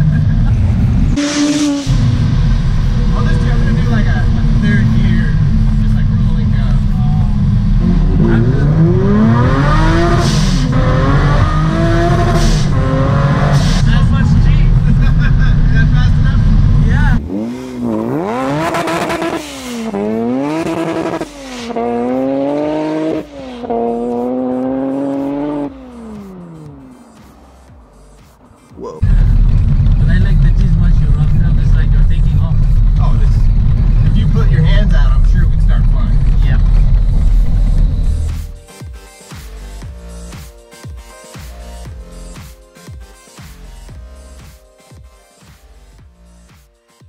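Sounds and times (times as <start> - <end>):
car engine accelerating hard: 0.0 - 27.2, 29.0 - 38.6
drivetrain and road noise: 0.0 - 38.7.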